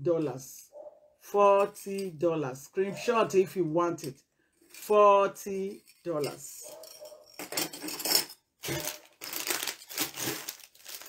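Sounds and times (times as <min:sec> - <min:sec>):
metal jewelry clinking: 0:01.6 - 0:02.2, 0:04.0 - 0:05.0, 0:05.6 - 0:11.0.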